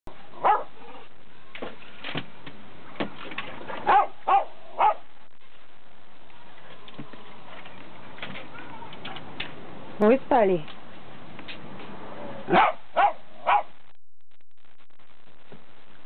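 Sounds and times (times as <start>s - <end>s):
small dog barking: 0.4s - 1.0s, 3.8s - 5.1s, 12.5s - 13.7s.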